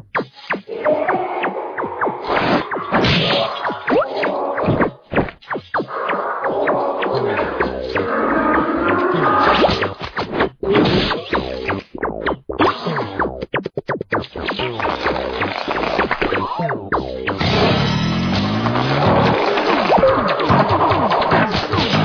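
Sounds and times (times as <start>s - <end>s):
cartoon music with sliding pitches: 0.2s - 22.0s
comic sound effects: 0.5s - 13.4s, 14.4s - 22.0s.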